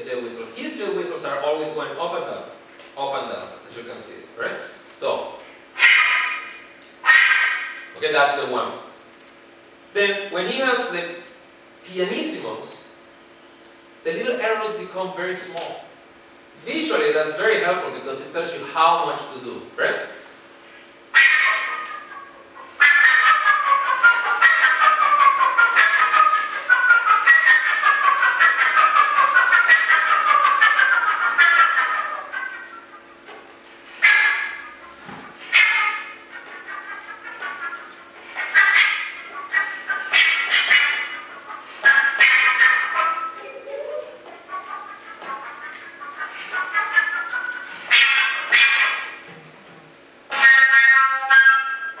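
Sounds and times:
solo flute playing fast notes: 0:05.8 - 0:07.8, 0:21.2 - 0:33.1, 0:34.0 - 0:49.1, 0:50.3 - 0:52.0.

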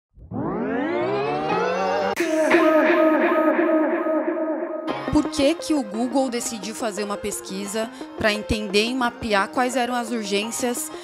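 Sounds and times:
synthesized rising chord: 0:00.1 - 0:05.1.

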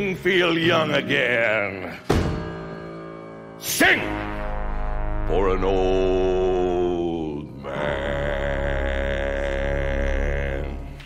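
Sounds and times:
low instrumental drone: 0:00.0 - 0:11.0
deep bass voice singing: 0:03.8 - 0:11.0.

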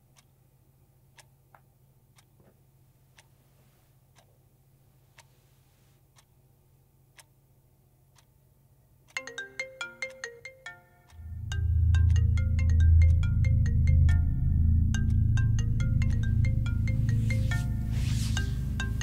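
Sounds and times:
clock ticking: 0:00.0 - 0:00.4, 0:01.0 - 0:01.5, 0:02.1 - 0:02.4, 0:04.1 - 0:04.3, 0:06.1 - 0:06.5, 0:07.1 - 0:07.4, 0:08.1 - 0:19.0
marimba-like phone ringtone: 0:09.2 - 0:19.0.

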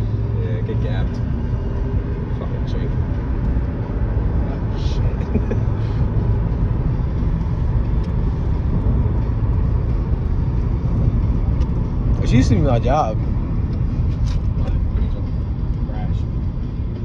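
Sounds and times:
car interior road rumble: 0:00.0 - 0:17.0.

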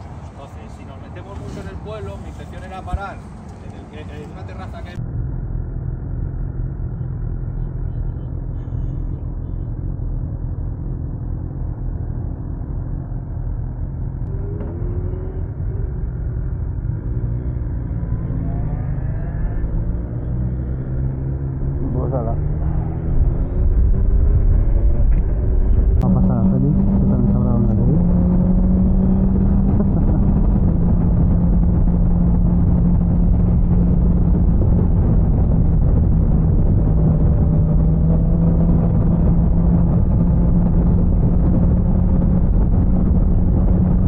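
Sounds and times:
people talking: 0:00.3 - 0:05.0, 0:21.8 - 0:23.0, 0:26.0 - 0:28.0
muffled motorcycle engine running: 0:05.0 - 0:44.0.

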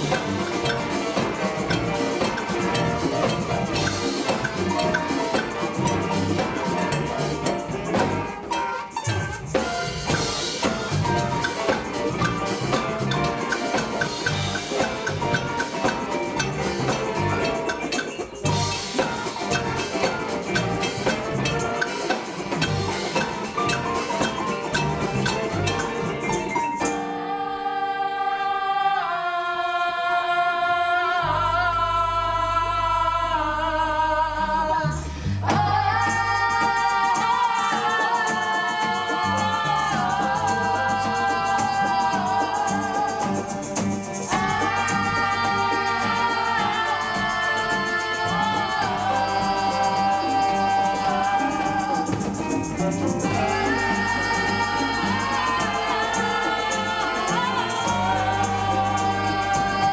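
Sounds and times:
live band music: 0:00.0 - 0:28.4, 0:30.7 - 0:59.9
young singers in harmony: 0:26.9 - 0:59.9.

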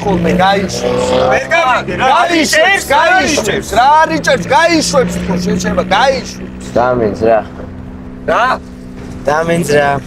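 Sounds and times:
car engine hum: 0:00.0 - 0:10.0
men talking excitedly: 0:00.0 - 0:10.0.

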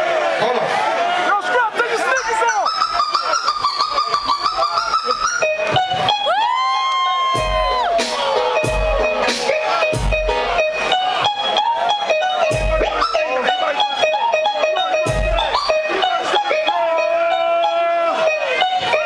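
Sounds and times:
turntable scratching: 0:02.5 - 0:06.2, 0:07.4 - 0:16.6
heavy bass drum hits: 0:07.4 - 0:09.3.

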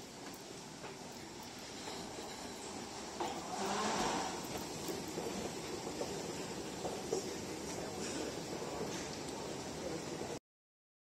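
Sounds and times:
indoor concourse noise: 0:00.0 - 0:10.4.

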